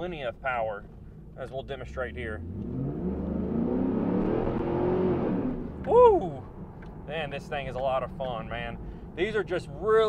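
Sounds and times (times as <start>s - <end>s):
car engine accelerating: 2.1s - 7.0s
man shouting woo: 5.8s - 6.5s.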